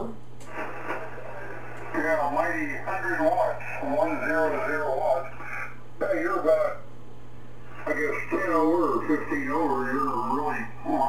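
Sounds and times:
steady low hum: 0.0s - 11.0s
man's voice over radio speaker: 1.9s - 6.9s, 7.7s - 11.0s.

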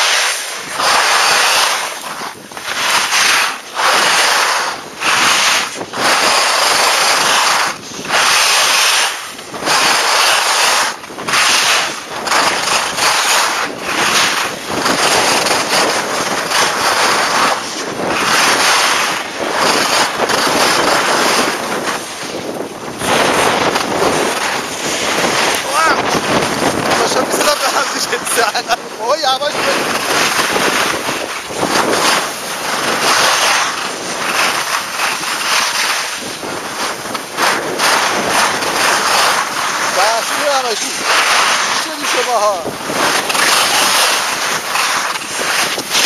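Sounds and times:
skis scraping over snow: 0.0s - 46.0s
wind on microphone: 0.0s - 46.0s.

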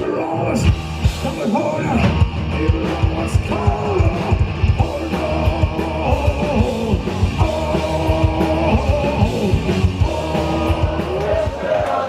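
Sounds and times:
electric guitars: 0.0s - 12.0s
fast drum beat: 0.6s - 12.0s.

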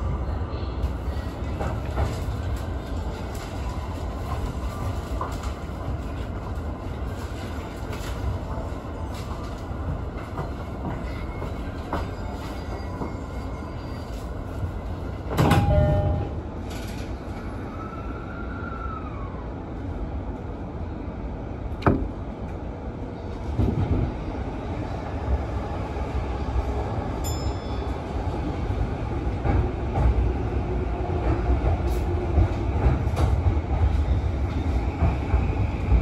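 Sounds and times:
electric train rumble: 0.0s - 36.0s.

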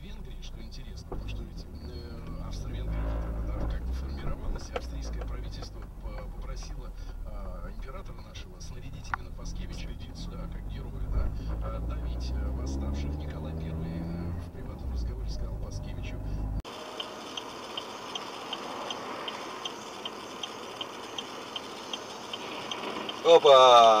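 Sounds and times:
engine and road rumble: 0.0s - 24.0s
light ticking: 16.7s - 23.4s.

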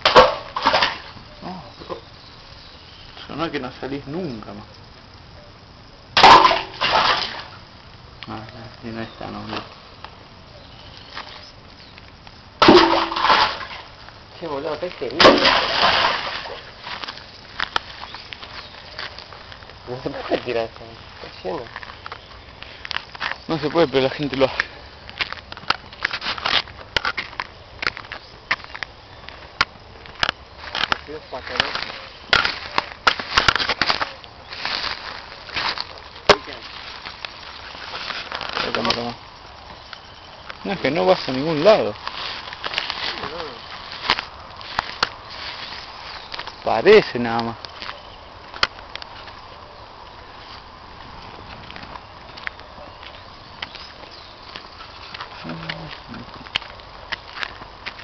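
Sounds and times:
object crashing and splashing: 0.0s - 1.1s, 6.2s - 7.5s, 12.6s - 13.9s, 15.2s - 16.7s
footsteps crunching dry leaves: 12.7s - 39.9s, 40.5s - 58.0s.

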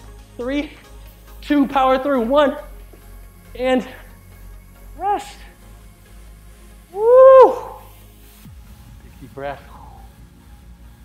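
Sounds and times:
man whooping: 6.9s - 7.9s.

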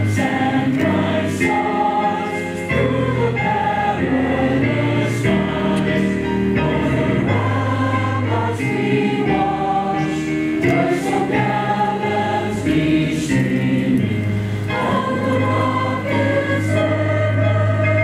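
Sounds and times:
choir singing held chords: 0.0s - 18.0s.

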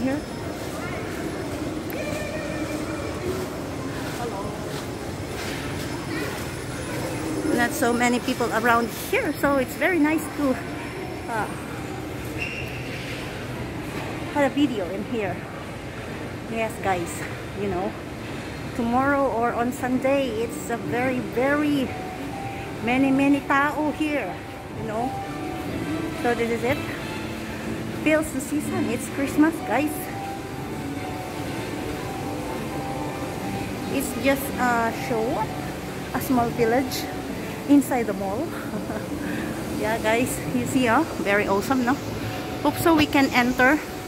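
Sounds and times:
faint background music: 0.0s - 44.0s
even hum and hiss: 13.4s - 44.0s.

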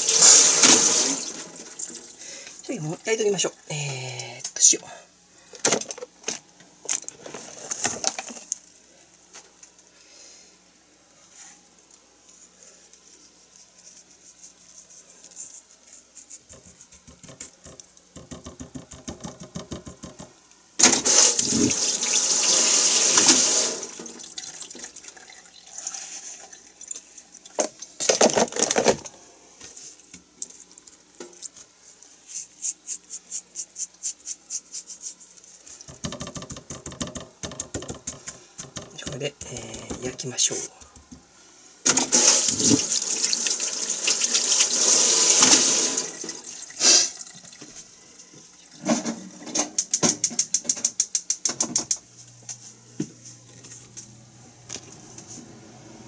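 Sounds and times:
water gushing: 0.0s - 2.2s, 21.0s - 26.2s, 42.0s - 47.5s.

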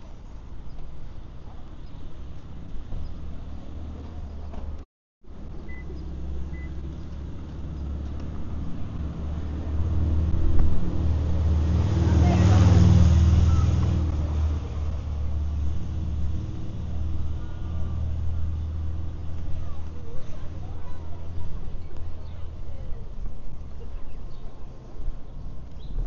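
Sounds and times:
low engine hum: 0.0s - 26.0s
car passing close by: 5.4s - 21.0s.

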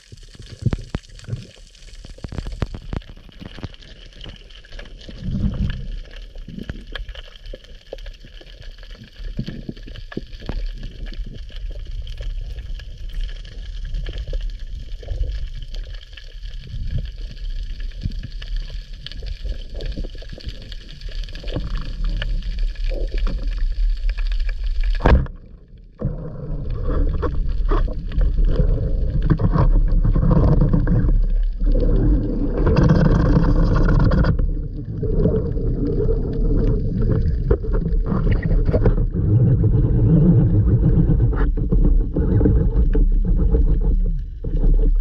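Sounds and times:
crackling clicks: 0.0s - 45.0s
water rushing and gurgling: 0.0s - 45.0s.

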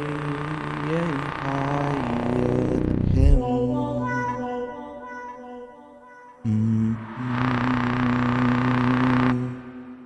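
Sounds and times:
beatbox hissing noise: 0.0s - 3.1s, 7.1s - 9.8s
beatbox bass drone: 0.0s - 3.4s, 6.8s - 9.8s.

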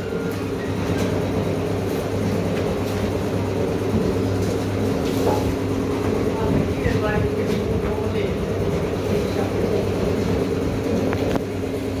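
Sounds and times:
machine hum and rumble: 0.0s - 12.0s.

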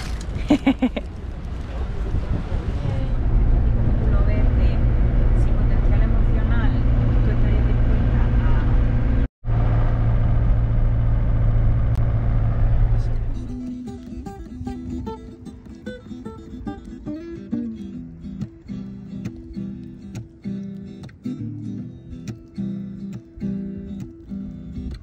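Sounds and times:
engine and road noise in cab: 0.0s - 14.4s.

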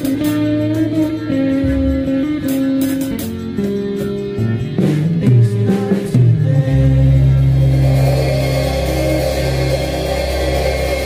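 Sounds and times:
rock band final chord: 0.0s - 11.0s.

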